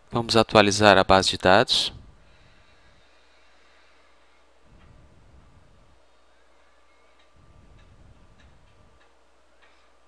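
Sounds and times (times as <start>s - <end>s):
light irregular ticks: 7.2s - 9.9s.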